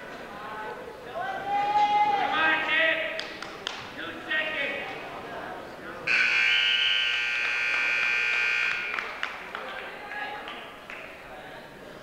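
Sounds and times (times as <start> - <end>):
scoreboard buzzer blast: 6.1 - 9.0.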